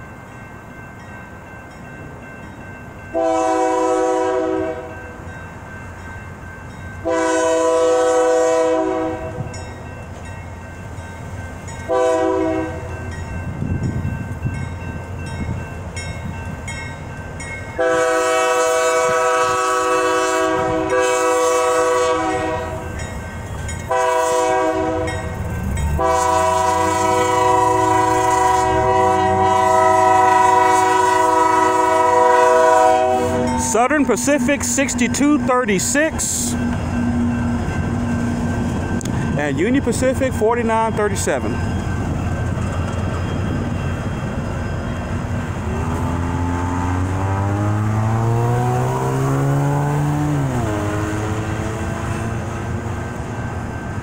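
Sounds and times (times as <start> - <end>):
locomotive engine rumbling: 0.0 - 54.0
locomotive horn blasts: 3.1 - 5.0, 7.0 - 9.5, 11.9 - 12.9, 17.8 - 22.9, 23.9 - 25.3, 25.9 - 37.2.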